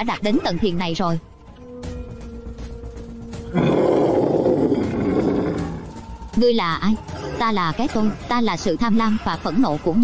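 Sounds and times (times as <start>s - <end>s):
low musical drone: 0.9s - 8.3s
loud roaring sound effect: 3.6s - 5.9s.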